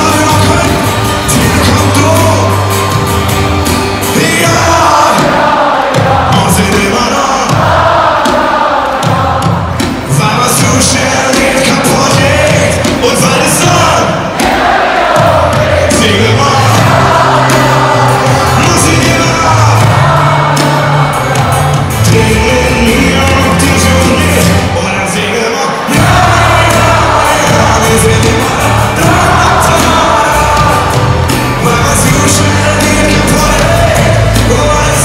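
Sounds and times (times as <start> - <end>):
lead vocal singing: 0.0 - 35.0
live band music: 0.0 - 35.0.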